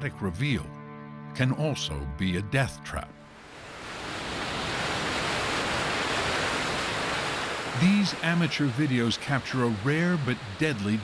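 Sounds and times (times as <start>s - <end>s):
floodwater rushing: 3.3s - 11.0s.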